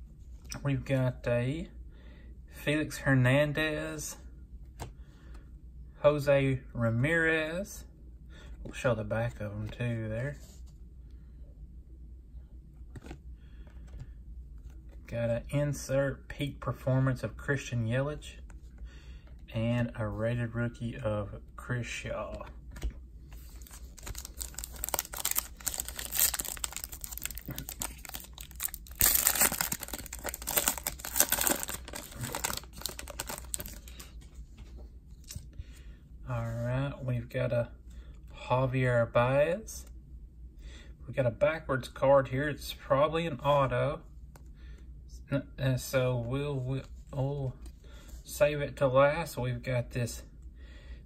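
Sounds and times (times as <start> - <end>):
low steady hum: 0.0 - 51.0
foil wrapper tearing and crinkling: 23.6 - 34.1.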